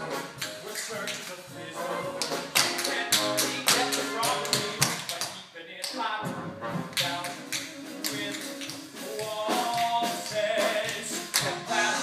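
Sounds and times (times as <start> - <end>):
band accompaniment: 0.0 - 12.0
tap shoes on stage floor: 2.2 - 11.6.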